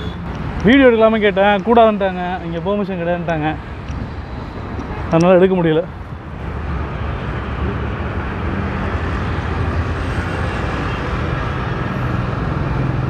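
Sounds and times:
vehicles passing on road: 0.0 - 13.0.

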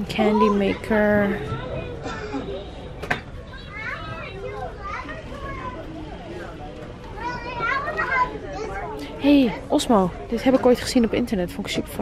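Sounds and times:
children's voices chattering: 0.0 - 12.0.

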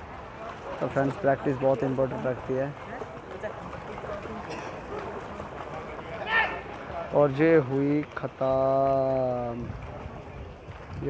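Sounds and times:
swimmers splashing: 0.0 - 10.9
distant spectators' voices: 0.0 - 11.0
high shout: 6.2 - 6.6.

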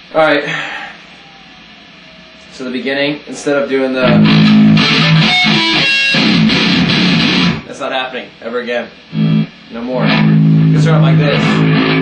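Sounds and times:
electric guitar chords: 4.0 - 7.7, 9.1 - 12.0.

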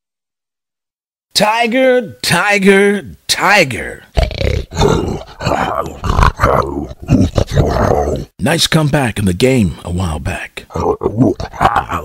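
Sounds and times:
tiger roaring and growling: 4.2 - 8.3.

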